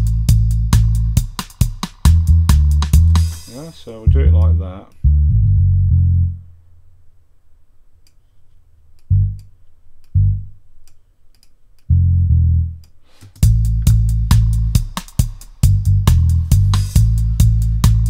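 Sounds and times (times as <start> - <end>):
deep synth bass notes: 0.0 - 1.2, 2.1 - 3.2, 4.1 - 6.6, 9.1 - 9.5, 10.1 - 10.6, 11.9 - 12.8, 13.4 - 14.8, 15.6 - 18.0
drum hits: 0.0 - 4.5, 13.4 - 18.0.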